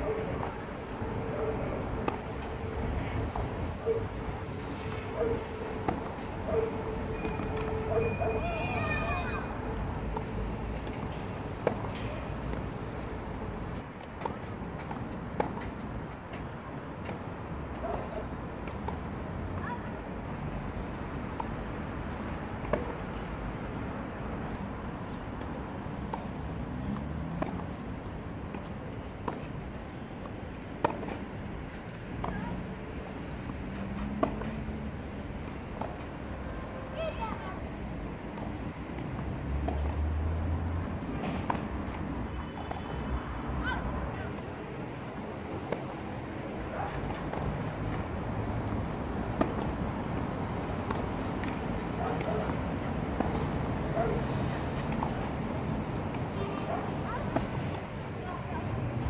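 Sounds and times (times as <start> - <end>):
tennis rackets striking ball: 1.2 - 2.5, 34.0 - 34.5.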